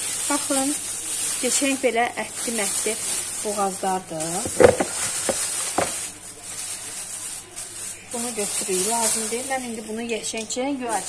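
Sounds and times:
plastic bag rustling: 0.0 - 10.2
raw meat dropping into bowl: 4.4 - 6.1.

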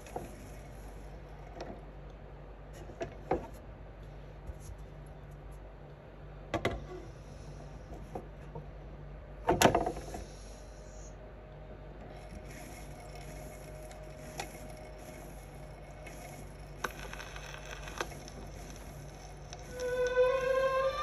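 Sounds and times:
low hum: 10.1 - 21.0
record surface hiss: 12.8 - 21.0.

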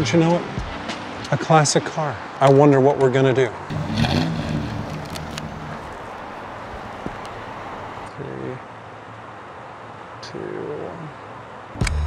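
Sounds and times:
footsteps on gravel: 3.7 - 8.0
steady rushing background: 3.7 - 8.1
vehicle engine hum: 3.7 - 8.1.

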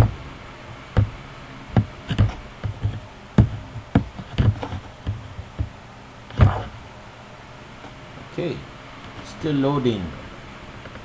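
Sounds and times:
faint steady hiss: 0.0 - 11.0
dull knocks: 0.9 - 6.8.

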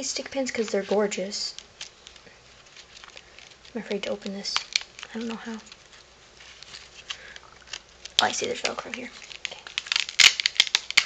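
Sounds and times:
paper rustling: 0.0 - 11.0.

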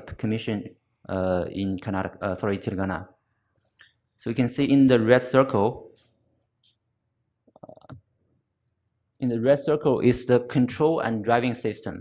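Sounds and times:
creaky throat sound: 7.5 - 8.0.

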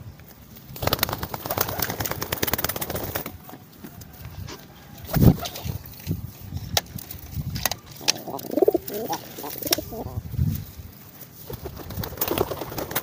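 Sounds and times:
pigeons cooing: 7.8 - 10.2.

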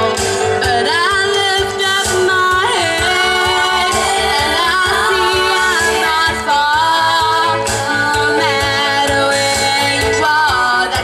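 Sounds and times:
backing music with low beat: 0.0 - 11.0
girl singing into a microphone: 0.6 - 11.0.

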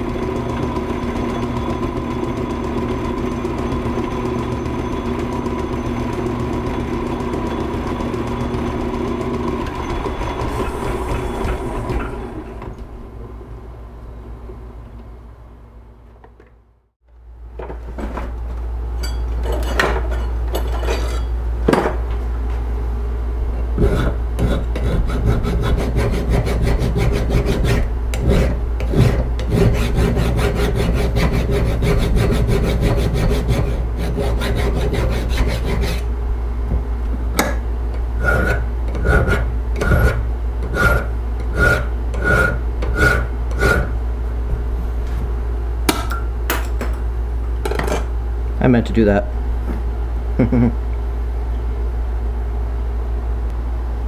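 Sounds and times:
steady low hum: 9.6 - 17.6, 18.4 - 54.0
file scraping metal rod: 23.8 - 36.1, 38.2 - 44.0.

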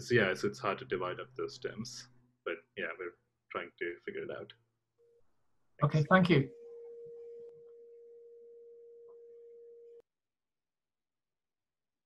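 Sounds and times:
faint steady electronic tone: 5.0 - 10.0.

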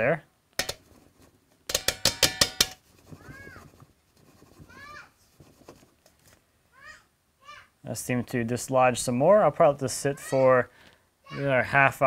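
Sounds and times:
rattling knocks of shaken chamber: 1.7 - 2.8.

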